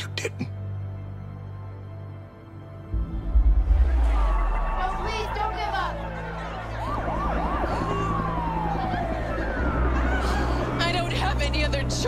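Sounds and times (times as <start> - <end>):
low steady drone: 0.8 - 12.0
emergency vehicle siren: 3.1 - 12.0.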